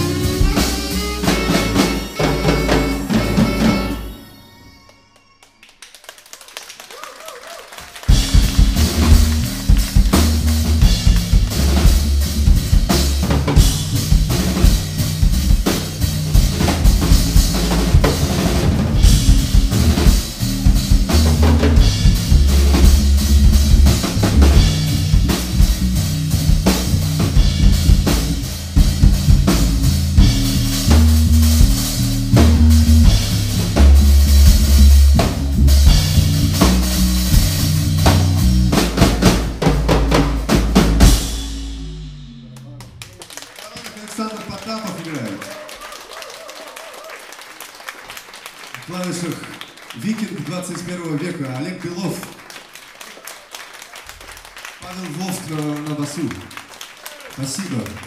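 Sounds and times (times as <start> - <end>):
deep bass line: 0.0 - 4.1, 8.1 - 43.2
drum kit snare and bass drum: 0.0 - 4.1, 7.8 - 43.0
live band playing: 0.0 - 5.5, 7.7 - 46.3.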